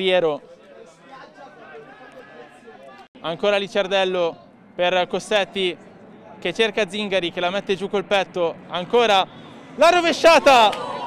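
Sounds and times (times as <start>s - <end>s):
faint chatter of voices: 0.4s - 3.1s.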